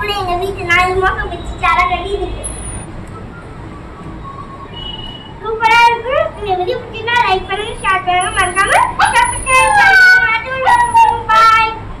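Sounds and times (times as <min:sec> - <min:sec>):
boy talking: 0:00.0 - 0:02.5, 0:05.4 - 0:11.8.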